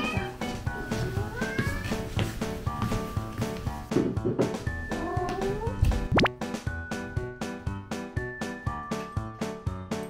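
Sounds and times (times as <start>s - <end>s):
background music with steady beat: 0.0s - 10.0s
cat meowing: 4.9s - 5.8s.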